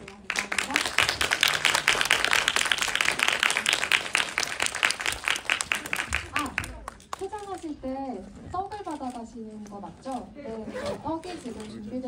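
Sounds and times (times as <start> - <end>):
audience applauding: 0.0 - 7.2.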